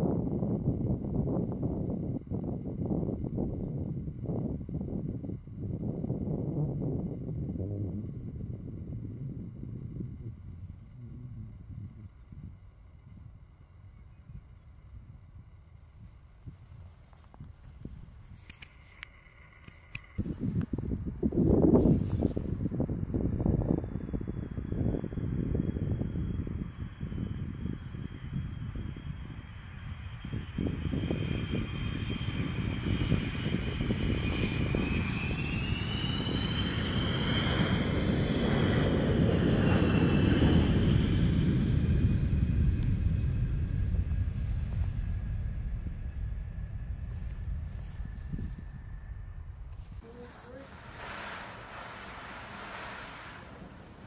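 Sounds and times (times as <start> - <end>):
jet engines rumble and whine: 0.0 - 54.0.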